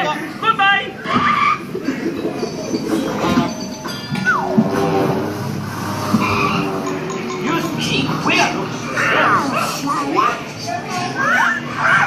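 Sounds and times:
sustained musical tones: 1.6 - 9.5.

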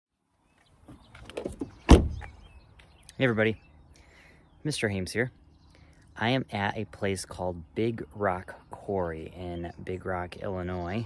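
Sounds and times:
loud thump: 1.4 - 2.3.

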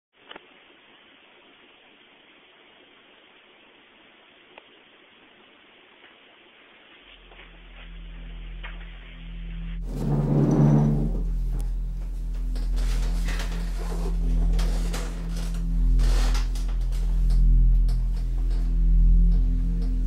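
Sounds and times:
ambient drone music: 7.2 - 20.0.

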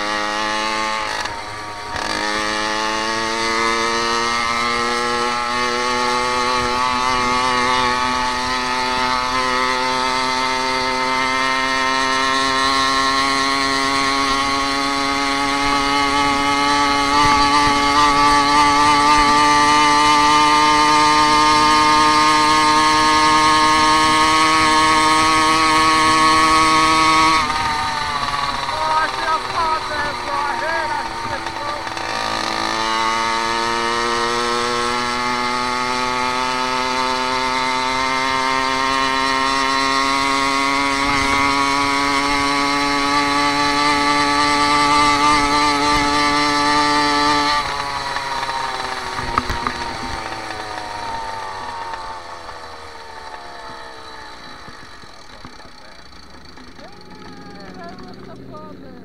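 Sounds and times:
motorized bicycle engine buzzing: 0.0 - 59.0.

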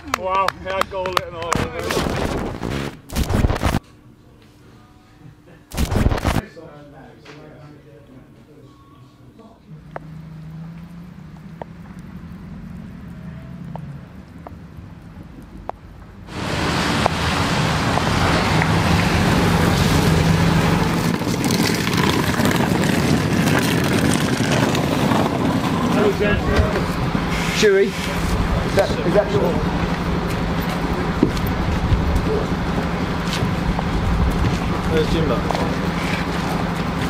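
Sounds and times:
coach engine running: 15.7 - 37.0.

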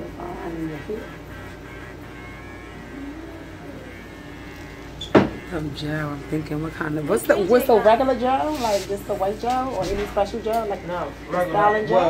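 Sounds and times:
steady low hum: 0.0 - 12.0
faint voice: 2.7 - 4.2.

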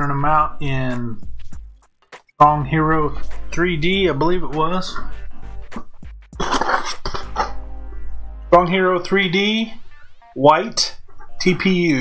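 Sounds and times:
faint background music: 0.0 - 12.0
man coughing: 6.4 - 7.6.

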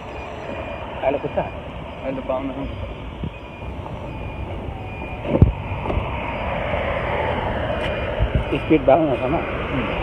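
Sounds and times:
motorbike engine and road rumble: 0.0 - 10.0.

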